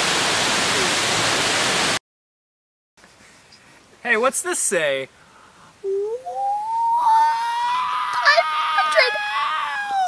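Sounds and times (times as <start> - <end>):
woman exclaiming high ohhh: 5.9 - 10.0.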